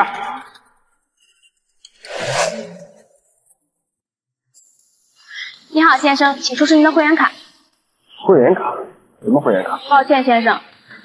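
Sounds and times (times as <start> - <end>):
transition whoosh: 2.0 - 3.2.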